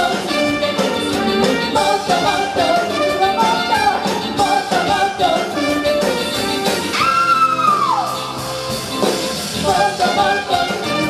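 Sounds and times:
live funk band playing: 0.0s - 11.0s
women singing: 1.7s - 5.9s, 9.6s - 11.0s.

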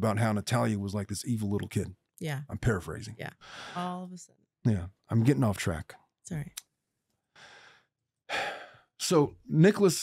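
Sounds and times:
person speaking: 0.0s - 5.8s
person breathing into microphone: 3.4s - 3.9s, 7.4s - 8.8s.

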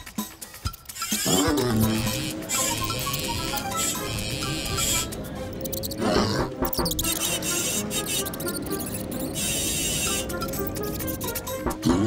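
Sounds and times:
cartoon background music: 0.0s - 12.0s
loud animal-like cry: 1.1s - 2.7s.

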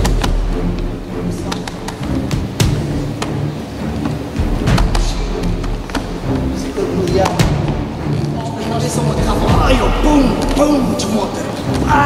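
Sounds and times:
background music: 0.0s - 12.0s
indistinct voices: 1.0s - 12.0s.

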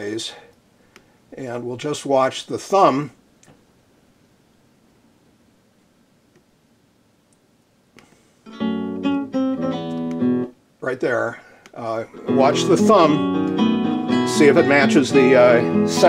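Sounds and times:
click: 3.4s - 3.6s, 6.3s - 6.5s, 9.9s - 10.2s
classical guitar plucked notes: 8.5s - 10.5s, 12.1s - 16.0s.

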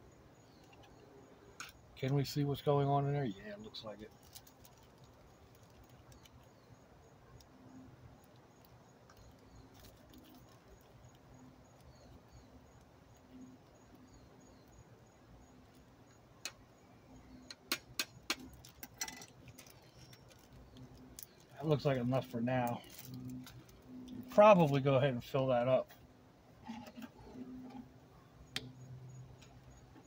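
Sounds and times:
plastic bag crinkling: 4.0s - 6.4s, 8.6s - 11.2s, 18.4s - 23.8s
sharp clicks: 17.4s - 19.7s.

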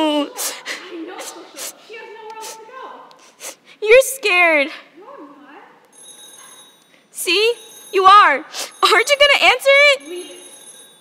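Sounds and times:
telephone ringing: 5.9s - 11.0s.

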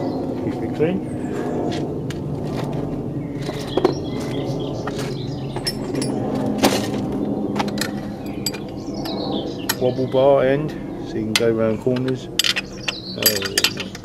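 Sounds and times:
steady low hum: 0.0s - 14.0s
metal hand tools clinking: 8.3s - 8.7s, 11.4s - 14.0s.

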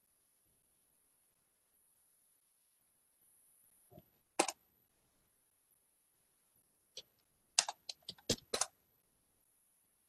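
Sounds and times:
computer keyboard typing: 7.0s - 8.8s.

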